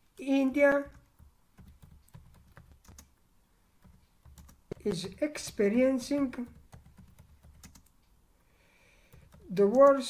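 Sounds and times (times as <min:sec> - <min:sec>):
computer keyboard keystrokes: 0:00.7 - 0:03.2, 0:03.8 - 0:07.9, 0:09.1 - 0:10.0.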